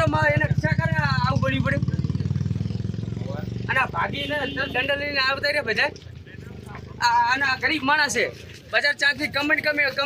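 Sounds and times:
vehicle engine idling: 0:00.0 - 0:05.1.

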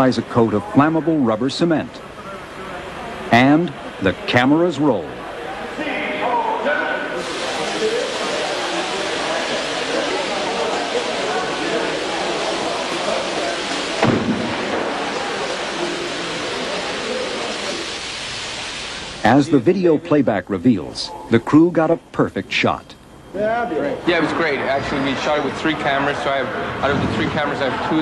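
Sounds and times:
carbon dioxide jets hissing: 0:07.0 - 0:26.4
sharp thump: 0:14.0 - 0:14.9.

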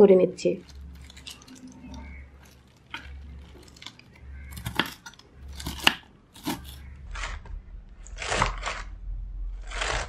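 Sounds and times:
knife chopping on wooden board: 0:04.5 - 0:06.8.

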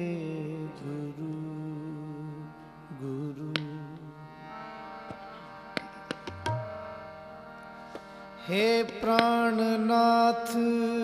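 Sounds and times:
harmonium: 0:00.0 - 0:11.0
tabla strokes: 0:05.1 - 0:08.1, 0:08.8 - 0:09.6
person singing: 0:08.4 - 0:11.0.

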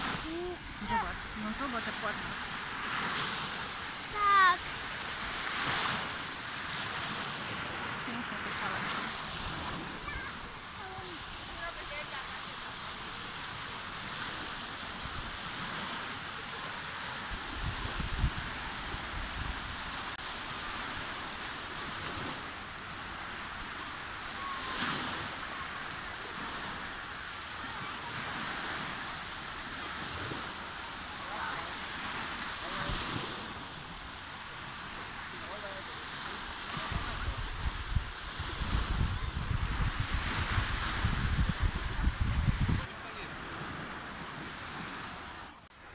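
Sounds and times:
waves washing onto sandy shore: 0:00.0 - 0:45.9
wind buffeting microphone: 0:17.3 - 0:19.9, 0:36.8 - 0:42.9.

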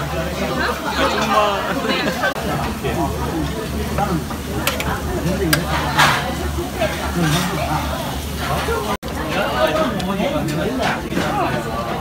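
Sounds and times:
restaurant diners chatter: 0:00.0 - 0:12.0
meat sizzling on a grill: 0:00.2 - 0:11.0.

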